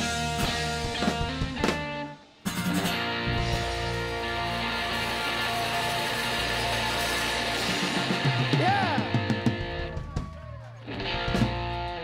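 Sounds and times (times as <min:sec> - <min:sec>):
distorted rock guitars: 0:00.0 - 0:12.0.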